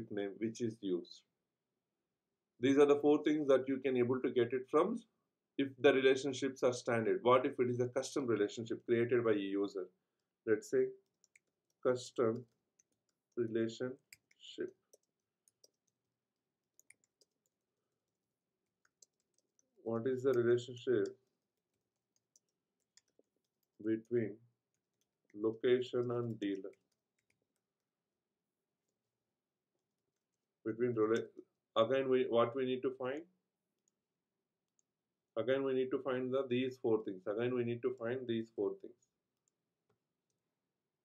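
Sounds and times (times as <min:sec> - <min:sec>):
typing on computer keyboard: 0:14.0 - 0:16.0, 0:16.6 - 0:24.1, 0:24.7 - 0:27.7.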